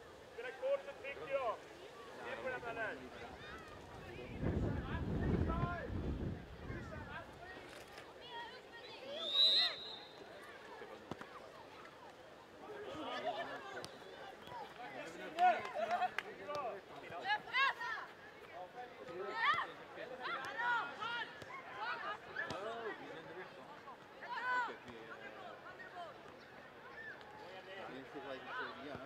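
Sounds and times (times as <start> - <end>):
referee whistle blast: 9.2 - 10.2
players shouting to each other: 19.2 - 22.7, 24.2 - 24.8.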